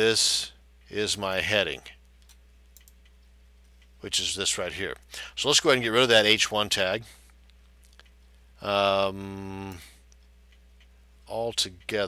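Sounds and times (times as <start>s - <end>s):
low electrical hum: 0.0s - 12.0s
computer mouse clicks: 2.1s - 3.9s.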